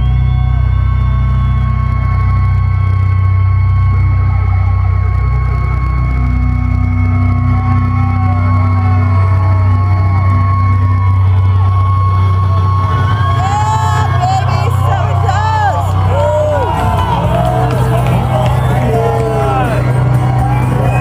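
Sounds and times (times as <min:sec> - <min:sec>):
amplifier feedback tones: 0:00.0 - 0:21.0
crowd whooping: 0:00.0 - 0:21.0.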